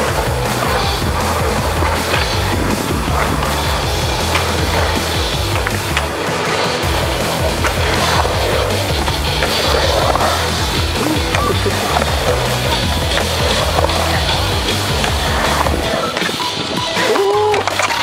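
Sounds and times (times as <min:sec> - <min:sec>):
music: 0:00.0 - 0:18.0
skateboard trucks grinding on metal: 0:00.0 - 0:18.0
skateboard wheels rolling on concrete: 0:00.0 - 0:18.0.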